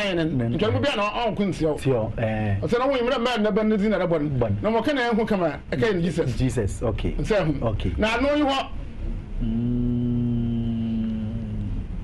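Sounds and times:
man humming low: 9.4s - 12.0s.

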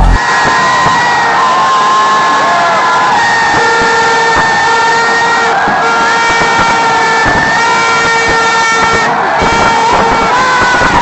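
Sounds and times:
horns droning: 0.0s - 0.2s
large crowd noise: 0.0s - 11.0s.

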